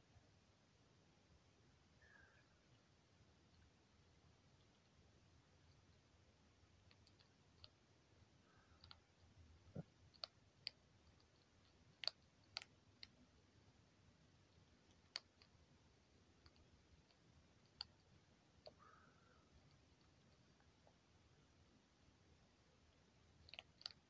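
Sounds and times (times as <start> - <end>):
skunk crunching dry kibble: 10.0 - 13.2.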